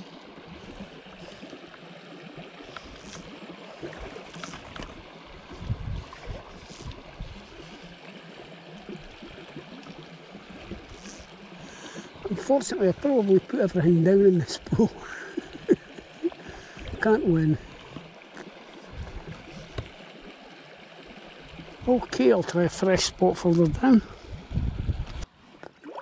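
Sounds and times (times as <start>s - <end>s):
water rushing over stones: 0.0s - 26.0s.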